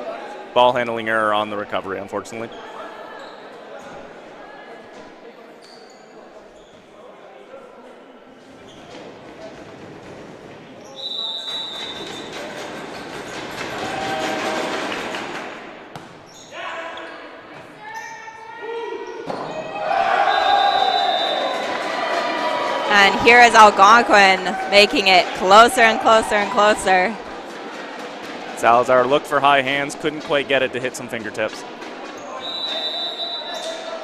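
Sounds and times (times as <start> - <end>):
referee whistle: 11.0 - 12.3, 20.2 - 21.6, 32.4 - 33.8
players and spectators shouting: 13.7 - 14.8, 17.9 - 27.5
ball bouncing: 15.9 - 16.3.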